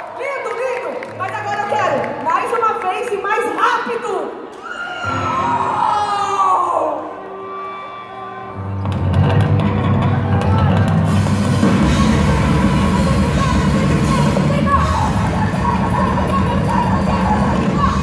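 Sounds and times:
heavy metal band playing: 8.8 - 18.0.

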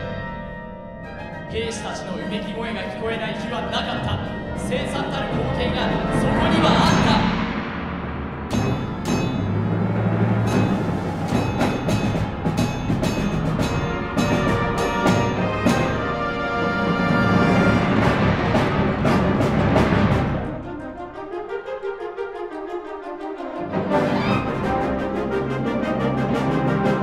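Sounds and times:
wind band playing: 1.1 - 8.5, 9.5 - 27.0
timpani and drum strikes: 3.8 - 21.0.

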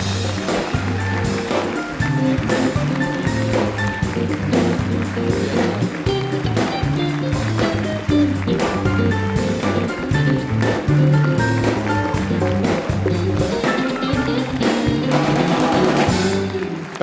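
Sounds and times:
live band playing: 0.0 - 17.0
prominent bass line: 0.0 - 17.0.

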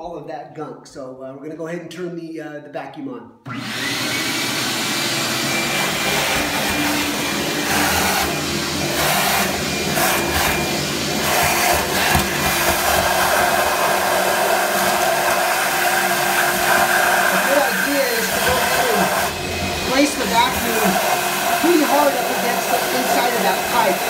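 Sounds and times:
shop vacuum sucking: 3.5 - 24.0.

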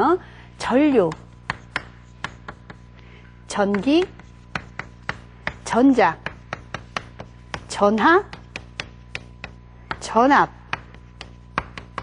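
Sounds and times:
chalk tapping on blackboard: 0.9 - 12.0.

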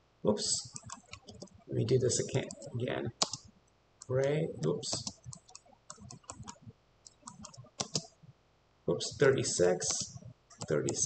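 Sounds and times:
keyboard and mouse clicking: 0.6 - 1.6, 2.2 - 8.2, 9.8 - 11.0.

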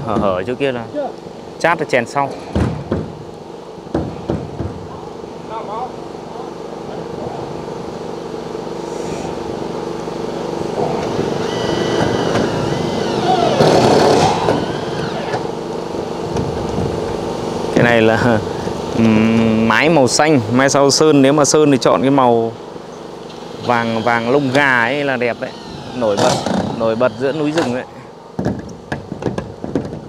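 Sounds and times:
small engine running: 10.8 - 15.7, 23.2 - 27.7.

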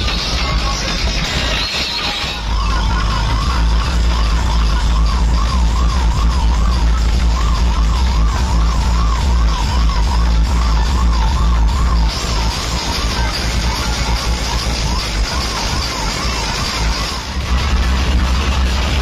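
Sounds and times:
loud dj music with deep bass: 0.0 - 19.0
siren-style warble: 1.4 - 19.0.

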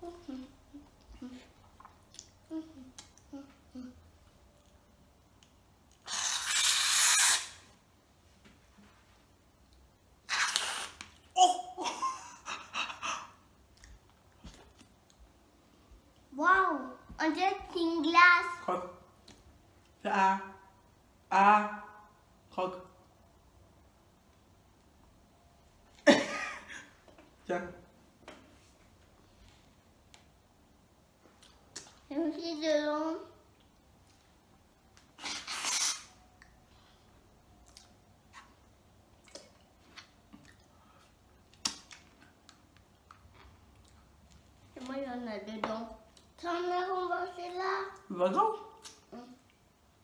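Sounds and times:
person making wordless sounds: 0.0 - 4.1
whipped cream can hissing: 6.1 - 7.6, 35.2 - 36.2.

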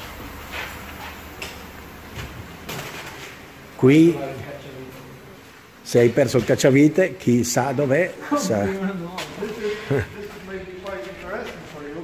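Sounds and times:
workshop room noise: 0.0 - 12.0.

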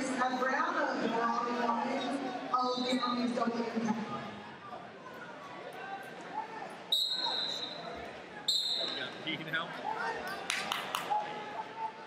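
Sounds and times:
referee's whistle blasts: 6.9 - 7.9, 8.5 - 9.1.

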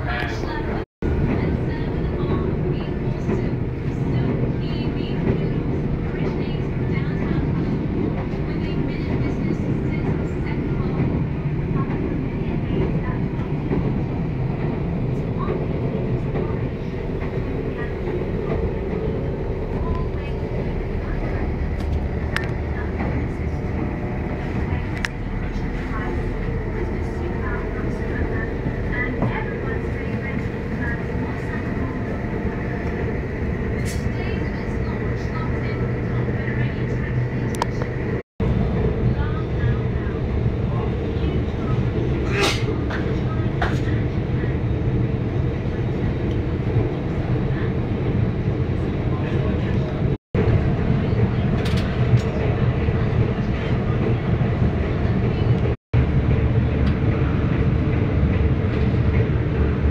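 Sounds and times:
train running at speed: 0.0 - 59.9.

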